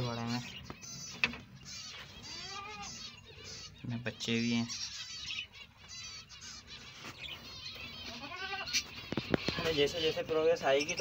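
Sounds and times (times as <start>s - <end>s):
finches chirping: 0.0s - 11.0s.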